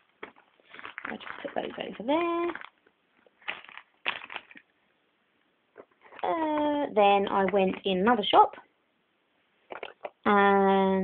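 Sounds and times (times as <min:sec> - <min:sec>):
plastic packaging crinkling: 0:00.0 - 0:04.8.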